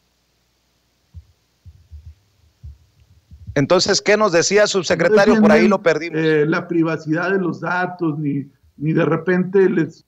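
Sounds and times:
soft low thumps: 1.1s - 3.9s.

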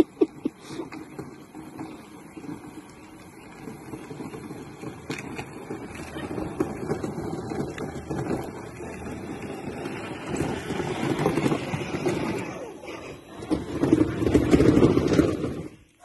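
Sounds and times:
toy car plastic wheels rumbling: 0.0s - 16.0s.

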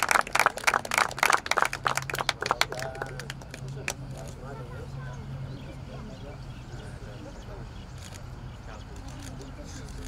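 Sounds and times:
people clapping: 0.0s - 4.0s.

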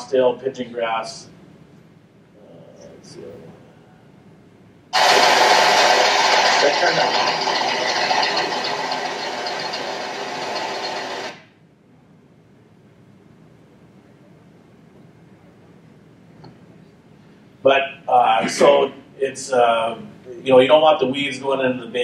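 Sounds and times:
grain cleaner machine running: 5.0s - 11.5s.

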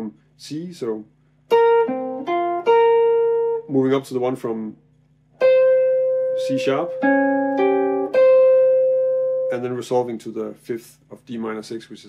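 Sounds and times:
electric guitar picked notes: 1.5s - 3.8s, 5.4s - 9.9s.

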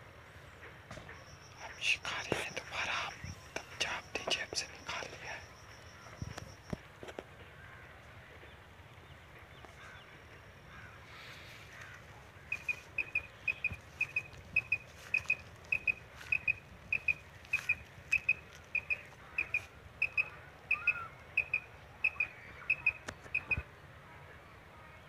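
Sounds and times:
quail call double chirps: 12.5s - 23.6s.

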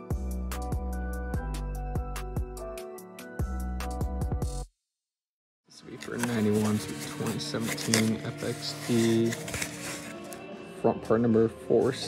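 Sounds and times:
cardboard box and paper rustling: 5.9s - 10.4s.

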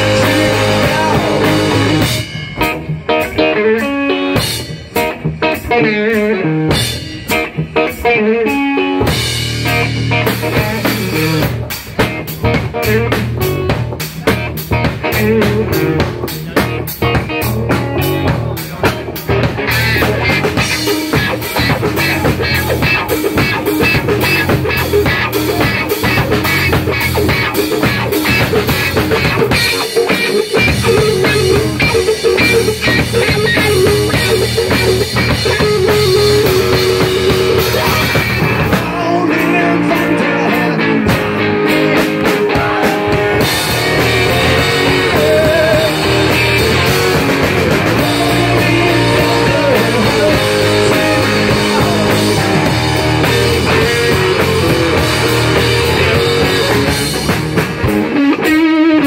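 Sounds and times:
drum kit: 0.0s - 59.0s
electric guitar: 0.0s - 59.0s.

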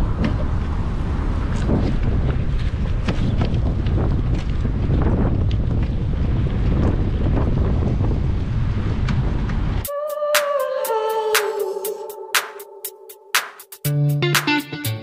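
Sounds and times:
wind buffeting microphone: 0.0s - 9.9s
bicycle clicks and rattles: 1.5s - 7.0s
music: 9.9s - 15.0s.

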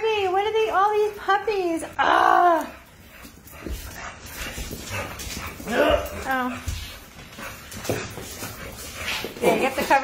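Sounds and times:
paws scratching on wooden floor: 0.0s - 10.0s
faint dog noises: 2.0s - 10.0s.

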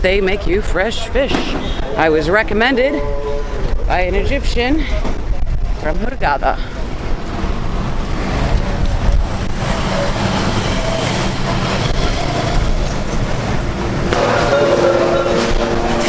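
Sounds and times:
multi-tone hum: 0.0s - 16.0s
street traffic: 0.0s - 16.0s
vehicle engine rumbling: 0.0s - 16.0s.

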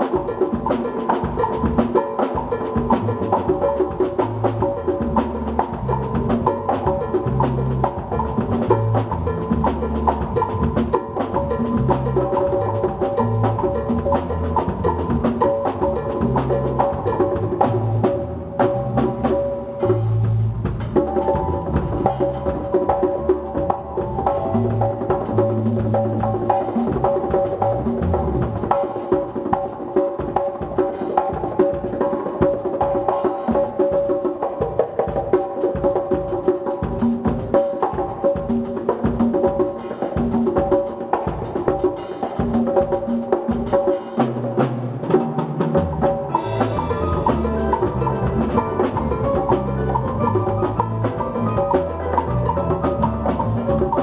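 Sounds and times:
congas played by hand: 0.0s - 54.0s
drum kit: 0.0s - 54.0s
sustained keyboard chords: 20.8s - 28.6s, 46.3s - 54.0s
low bass line: 46.3s - 54.0s.

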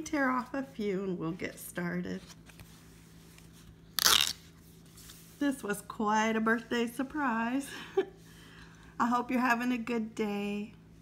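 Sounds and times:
cardboard ticket tearing: 4.0s - 4.5s.

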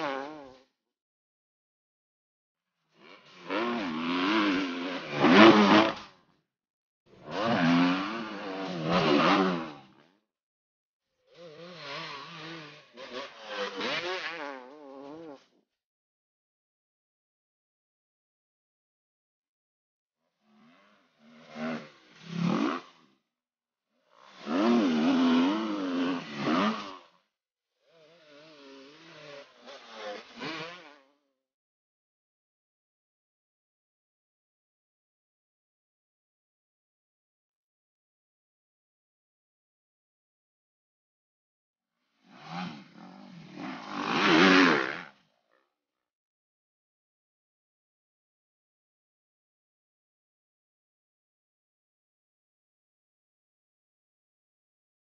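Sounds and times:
dirt bike engine revving: 0.0s - 0.6s, 3.0s - 6.2s, 7.1s - 10.1s, 11.3s - 15.4s, 20.6s - 23.1s, 24.2s - 27.2s, 28.0s - 31.2s, 42.3s - 45.2s.

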